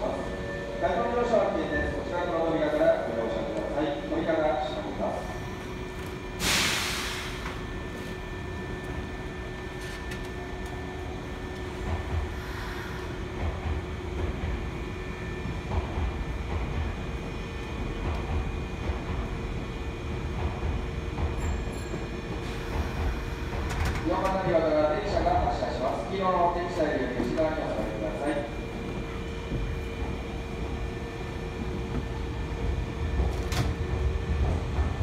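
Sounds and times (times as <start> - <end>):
compressed-air hiss: 6.4 - 7.4.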